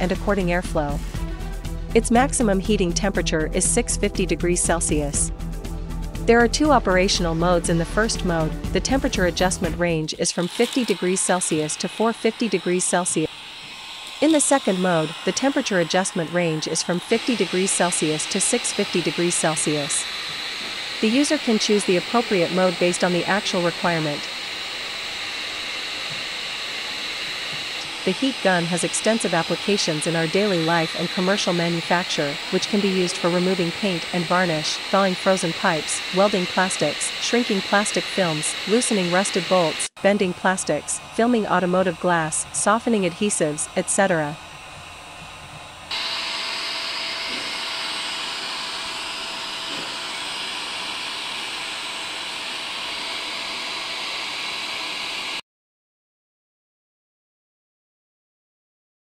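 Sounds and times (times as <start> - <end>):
hot air gun fan blowing: 7.2 - 55.4.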